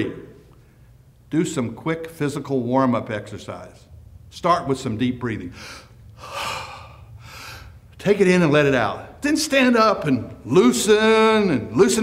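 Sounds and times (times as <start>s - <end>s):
man breathing deeply: 5.5s - 7.9s.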